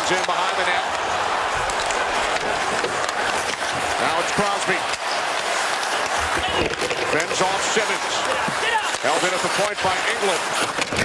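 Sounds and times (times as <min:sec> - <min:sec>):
crowd noise: 0:00.0 - 0:11.0
hockey sticks and skates on ice: 0:00.0 - 0:11.0.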